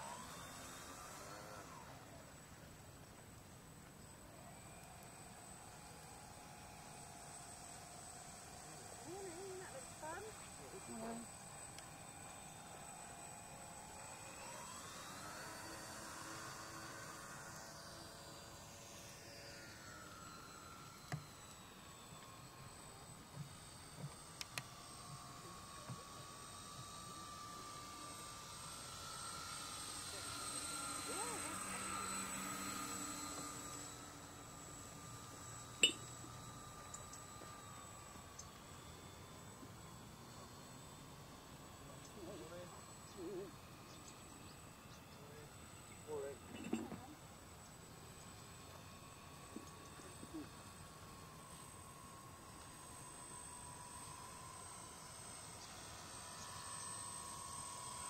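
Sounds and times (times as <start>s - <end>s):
model plane motors whining: 0.0s - 58.0s.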